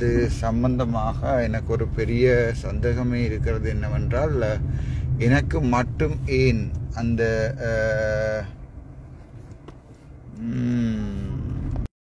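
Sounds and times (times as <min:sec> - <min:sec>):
car cabin rumble: 0:00.0 - 0:11.9
man humming hesitantly: 0:10.3 - 0:11.8.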